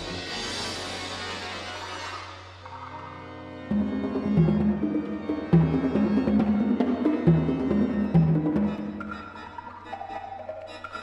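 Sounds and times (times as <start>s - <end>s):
percussion strikes: 0.0s - 11.0s
pipe organ playing: 2.8s - 11.0s.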